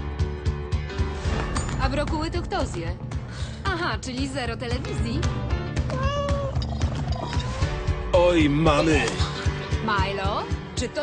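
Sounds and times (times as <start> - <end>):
cat meowing: 5.9 - 6.7.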